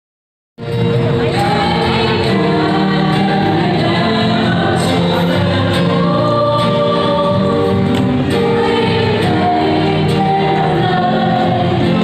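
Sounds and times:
acoustic guitar: 0.6 - 12.0
keyboard: 0.6 - 12.0
group singing long held notes: 1.2 - 12.0.

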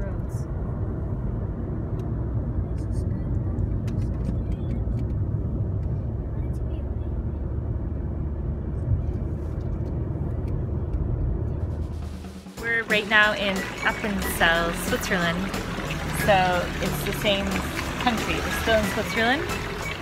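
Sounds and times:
car cabin hum of engine and tyres: 0.0 - 12.3.

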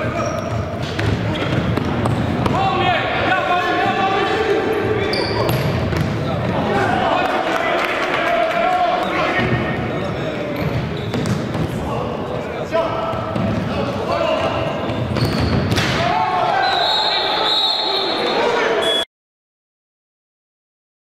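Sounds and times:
players shouting: 6.4 - 10.3, 12.7 - 19.0
referee whistle blast: 16.6 - 19.1.

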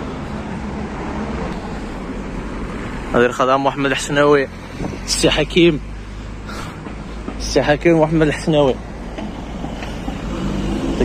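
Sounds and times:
car driving past: 9.1 - 11.0.

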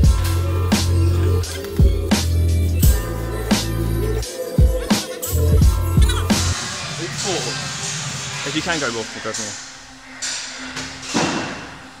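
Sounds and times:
background music with low note: 0.0 - 12.0.

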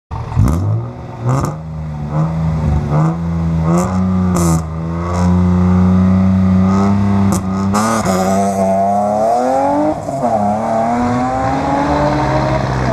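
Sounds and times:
rally car engine revving: 0.1 - 12.9
car accelerating hard: 0.2 - 12.9.

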